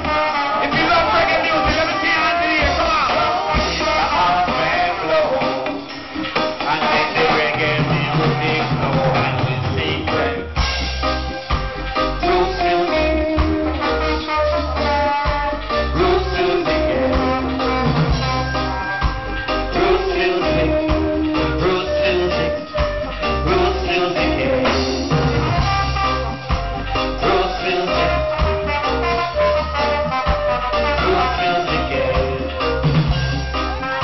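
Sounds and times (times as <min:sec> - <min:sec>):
guitar: 0:00.0 - 0:34.0
horn melody: 0:00.0 - 0:34.0
reggae band playing: 0:00.0 - 0:34.0
deep pulsing bass line: 0:07.8 - 0:34.0.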